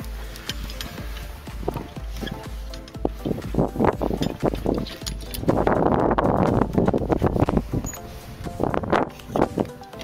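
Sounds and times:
footsteps on wooden planks: 0:00.0 - 0:09.8.

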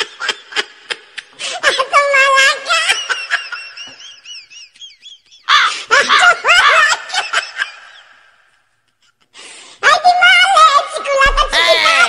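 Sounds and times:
high-pitched laughter: 0:00.0 - 0:08.5.

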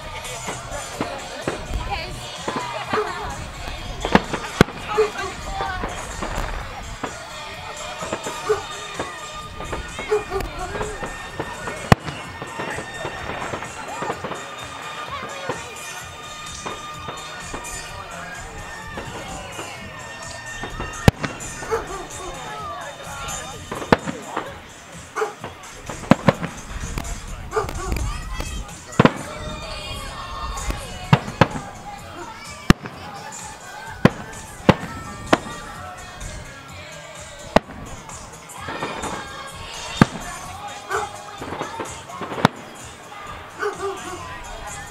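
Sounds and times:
background music: 0:00.0 - 0:44.9
background voices: 0:00.0 - 0:44.9
firework shells bursting: 0:03.6 - 0:07.3, 0:08.0 - 0:14.7, 0:18.7 - 0:22.4, 0:23.2 - 0:24.8, 0:25.4 - 0:33.4, 0:41.1 - 0:42.9
firework bang: 0:20.6 - 0:22.2, 0:25.4 - 0:31.8.

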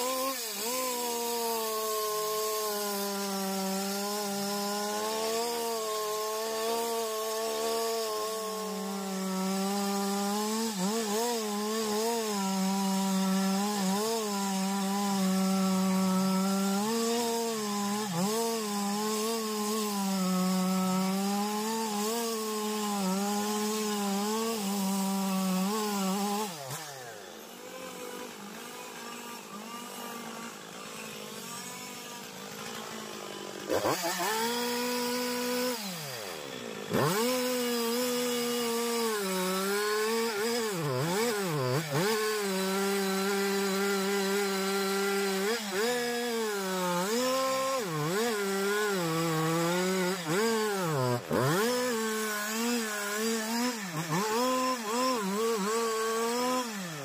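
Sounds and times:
chainsaw cutting wood: 0:00.0 - 0:57.0.

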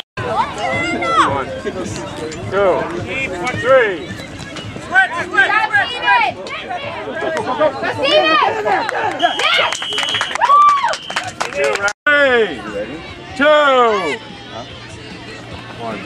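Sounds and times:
spectators shouting and cheering: 0:04.7 - 0:16.0.

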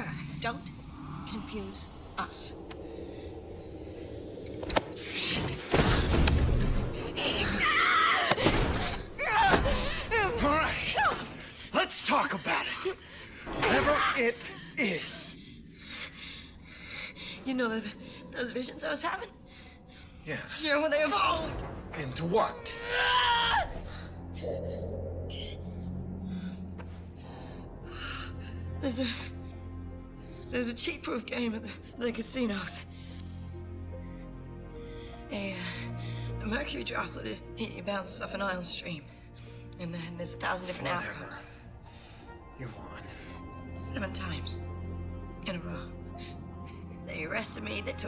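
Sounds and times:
low steady hum: 0:23.6 - 0:33.4.

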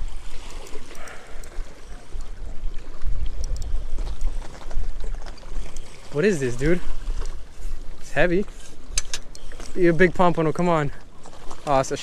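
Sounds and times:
small waves against rocks: 0:00.0 - 0:12.0.

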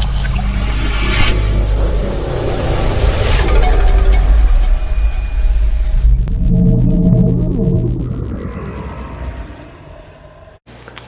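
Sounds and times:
deep bass rumble: 0:03.8 - 0:10.6.

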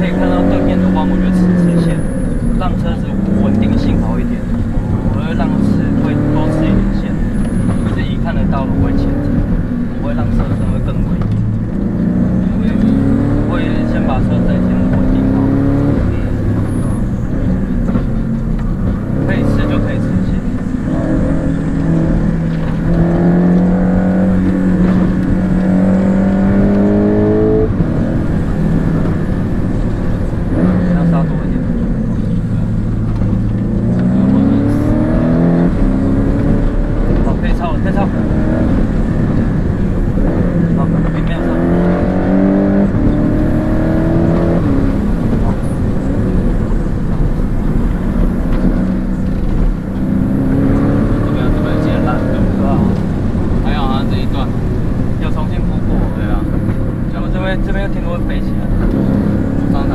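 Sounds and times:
car engine revving: 0:00.0 - 0:59.9.

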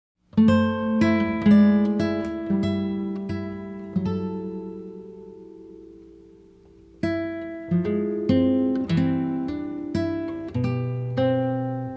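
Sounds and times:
plucked acoustic guitar: 0:00.3 - 0:11.9.

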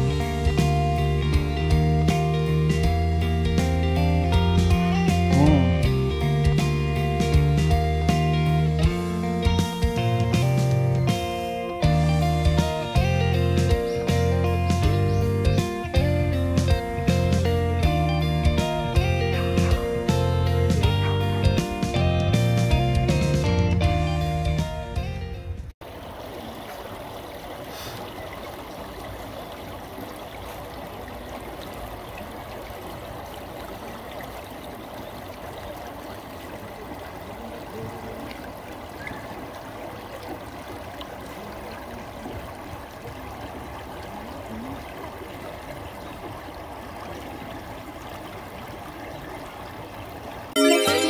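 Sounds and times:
stream running over stones: 0:00.0 - 0:11.2, 0:25.8 - 0:51.0
strummed guitar music: 0:00.0 - 0:25.4, 0:50.6 - 0:51.0.

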